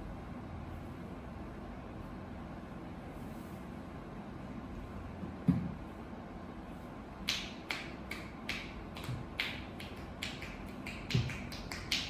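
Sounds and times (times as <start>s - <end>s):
percussive massage clapping taps: 7.2s - 12.0s.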